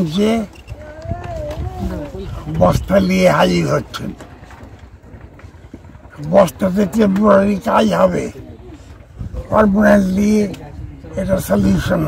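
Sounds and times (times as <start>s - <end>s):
man speaking: 0.0s - 0.5s, 1.8s - 4.2s, 6.2s - 8.7s, 9.4s - 12.0s.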